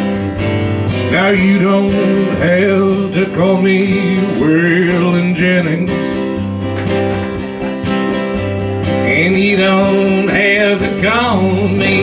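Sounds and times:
bass notes: 0:00.0 - 0:12.0
strummed acoustic guitars: 0:00.0 - 0:12.0
man singing: 0:01.0 - 0:06.3, 0:08.9 - 0:12.0.

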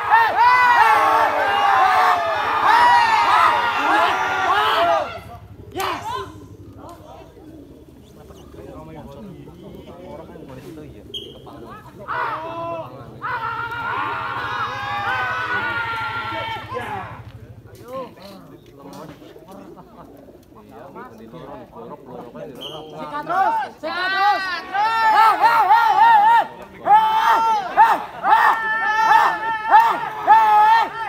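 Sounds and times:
distant men calling out: 0:00.0 - 0:31.0
people's voices: 0:00.0 - 0:31.0
pigeons cooing: 0:02.1 - 0:22.3.

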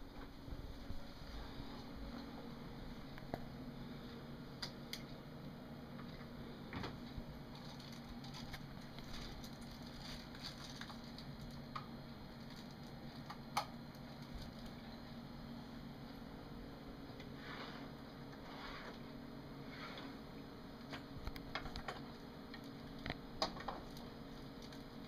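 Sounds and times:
clicks and rustles of handling: 0:06.0 - 0:14.8.

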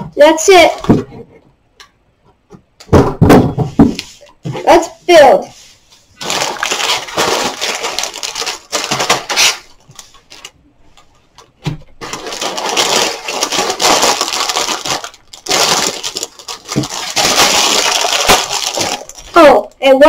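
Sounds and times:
plastic bags crinkling: 0:06.1 - 0:10.6, 0:11.4 - 0:19.7
plastic bricks rattling: 0:06.2 - 0:10.6, 0:12.0 - 0:19.4.

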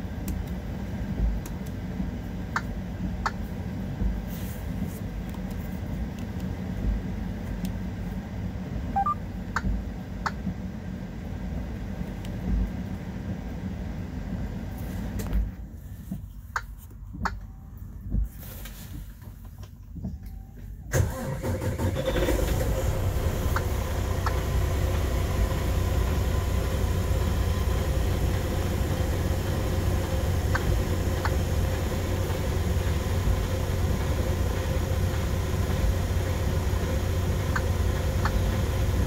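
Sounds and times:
diesel engine starting and idling: 0:20.8 - 0:39.0.

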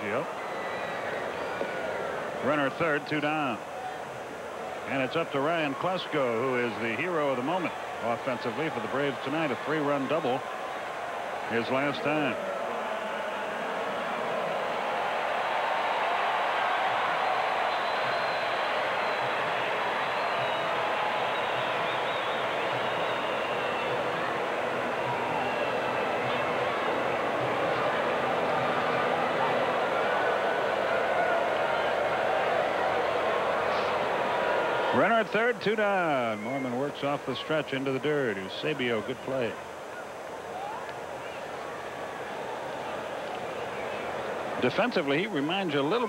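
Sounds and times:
crowd voices humming: 0:00.0 - 0:46.0.

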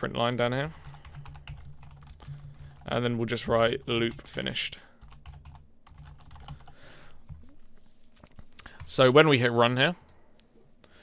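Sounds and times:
computer keyboard keystrokes: 0:00.8 - 0:02.9, 0:05.0 - 0:06.7.

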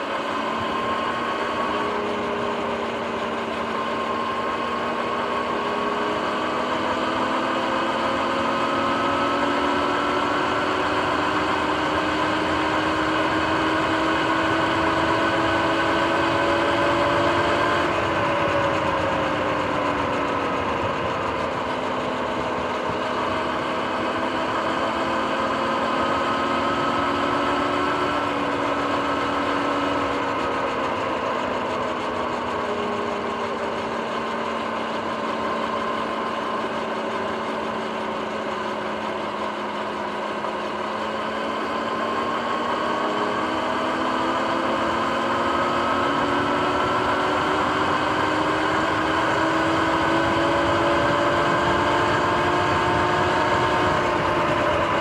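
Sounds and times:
electric dirt bike motor whine: 0:00.0 - 0:55.0
wind and tyre noise: 0:00.0 - 0:55.0.

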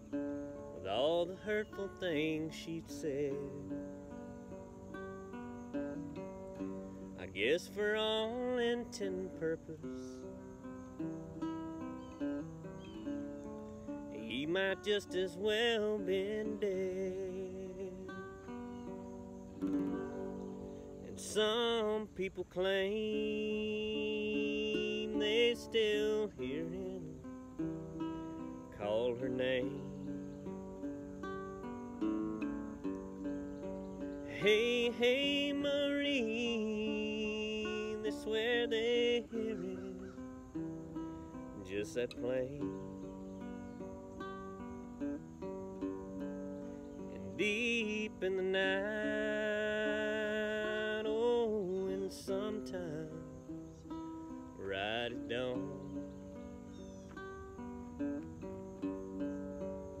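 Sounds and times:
acoustic guitar picking and strumming: 0:00.0 - 1:00.0.

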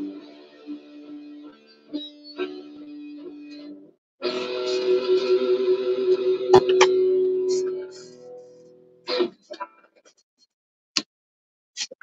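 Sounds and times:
guitar sustained ringing notes: 0:00.0 - 0:09.1.

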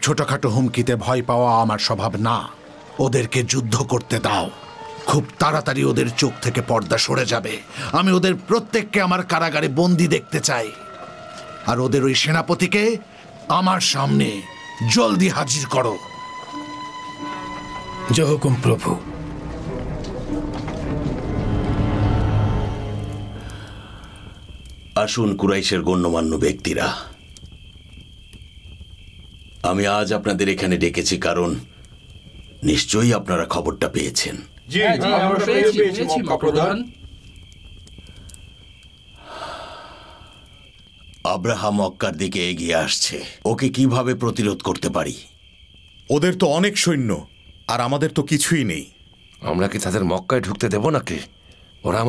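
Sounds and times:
thin high tone: 0:14.1 - 0:19.3, 0:20.4 - 0:24.2
low musical note: 0:15.7 - 0:24.1
droning music chord: 0:15.8 - 0:24.0
soft breathy exhale: 0:39.2 - 0:40.7.

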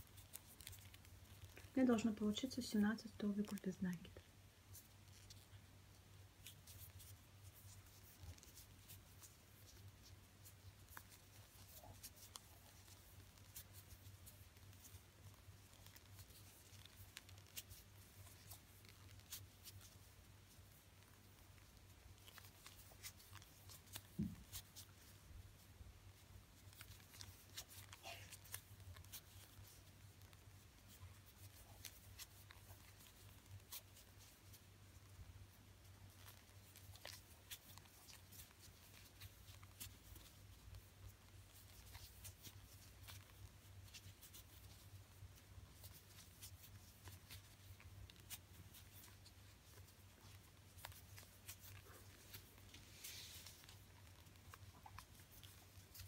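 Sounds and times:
crochet hook rustling and clicking: 0:00.0 - 0:56.0.

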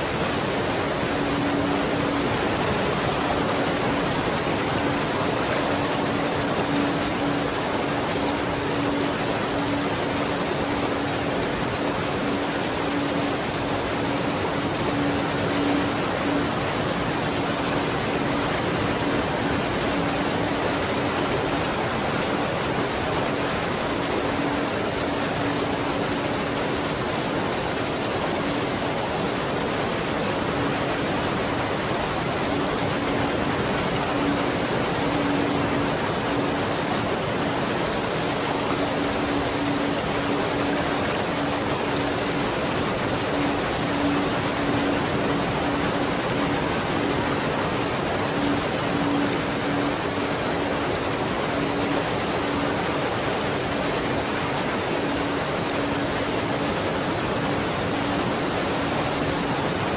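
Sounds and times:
pure tone: 0:00.0 - 0:59.9
waterfall rushing: 0:00.0 - 0:59.9.

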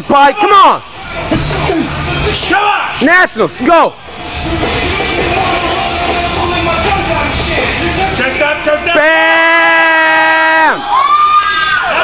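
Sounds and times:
people shouting and cheering: 0:00.1 - 0:12.0.

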